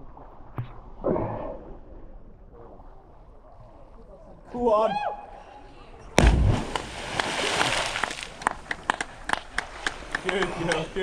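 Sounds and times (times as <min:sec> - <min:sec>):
heavy splash into water: 0:06.2 - 0:08.7.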